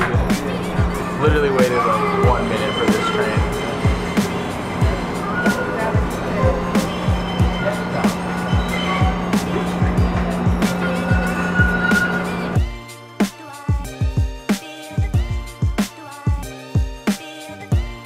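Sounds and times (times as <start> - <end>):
background music with deep kick drums: 0.0 - 18.0.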